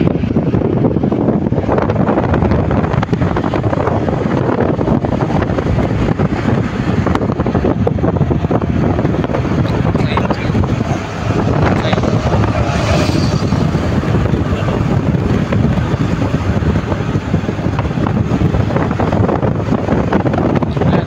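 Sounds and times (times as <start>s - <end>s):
wind and tyre noise: 0.0s - 21.0s.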